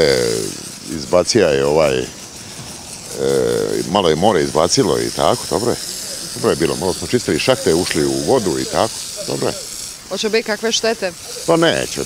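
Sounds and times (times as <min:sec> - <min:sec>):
man speaking: 0:00.0 - 0:02.2, 0:03.1 - 0:09.7, 0:11.3 - 0:12.0
man's drawn-out hesitation sound: 0:00.0 - 0:10.0, 0:11.2 - 0:12.0.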